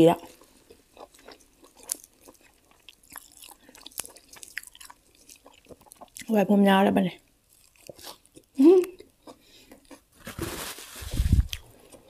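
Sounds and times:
chewing with soft clicks: 0.2 - 6.3, 7.5 - 10.0
leafy greens rustling: 10.2 - 11.7.

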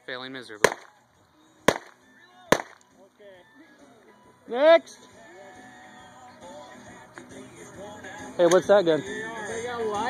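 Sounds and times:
pistol shots: 0.6 - 1.0, 1.7 - 2.8.

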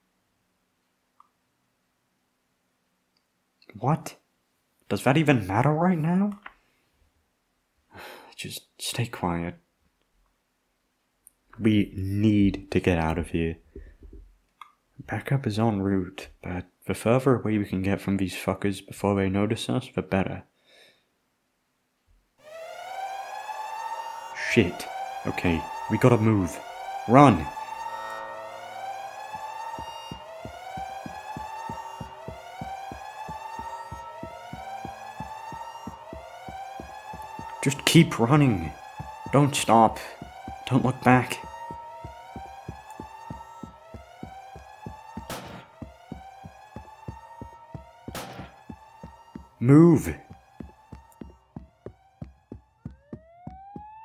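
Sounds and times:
alarm siren: 22.4 - 54.0.

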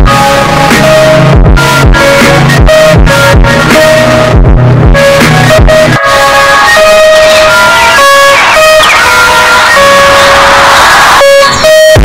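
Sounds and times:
distorted clipping music: 0.0 - 12.0.

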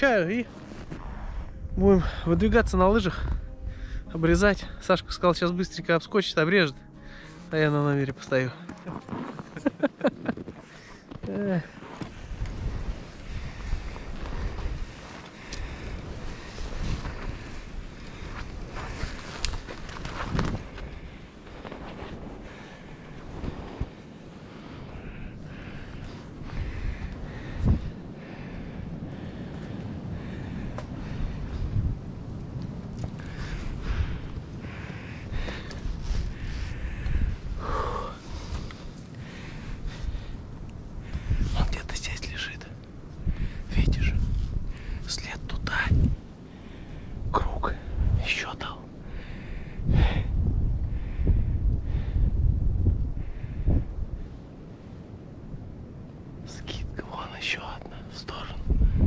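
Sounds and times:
footsteps in snow: 0.0 - 1.6, 7.1 - 24.8
wind rumbling on microphone: 0.0 - 5.9, 8.9 - 59.0.

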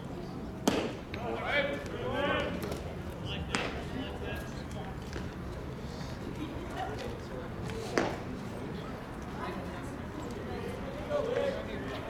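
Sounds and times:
baseball smacking into leather mitt: 0.6 - 1.0.

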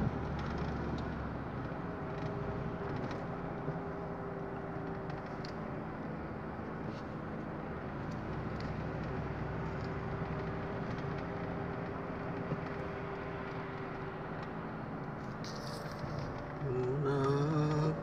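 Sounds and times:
car engine and tyre noise: 0.0 - 18.0.

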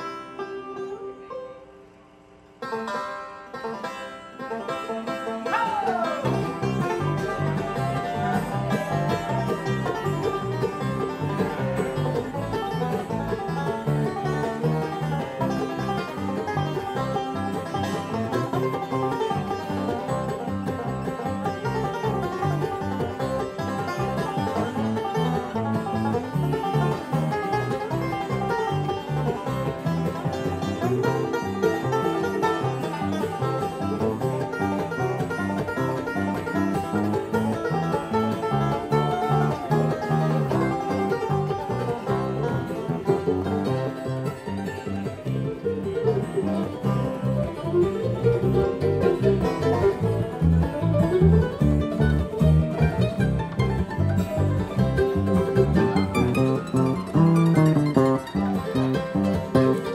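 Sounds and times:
banjo picking: 0.0 - 59.9
electric bass: 6.2 - 59.9.

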